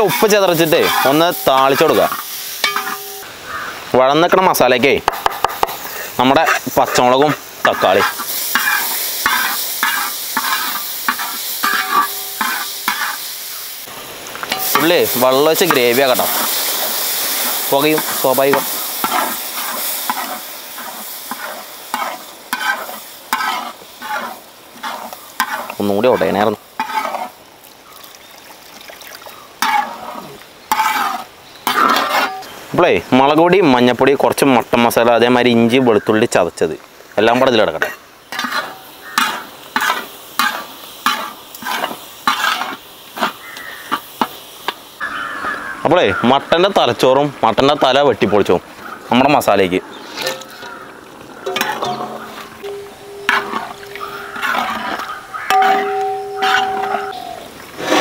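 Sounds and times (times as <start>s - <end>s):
wooden spatula scraping a pan: 0.0s - 3.2s, 5.5s - 13.2s, 17.7s - 27.4s, 29.6s - 32.5s, 38.3s - 44.4s, 50.0s - 58.0s
onions sizzling in a pan: 0.0s - 58.0s
short steady tone: 52.6s - 53.7s.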